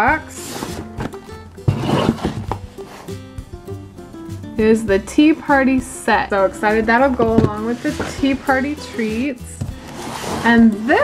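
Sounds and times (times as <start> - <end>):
background music: 0.0 - 11.0
cardboard box rustling and knocking: 0.4 - 2.7, 7.2 - 8.3.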